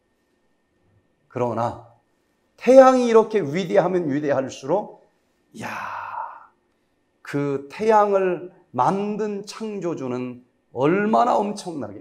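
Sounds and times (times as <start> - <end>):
man's breathy exclamation: 5.6 - 6.5.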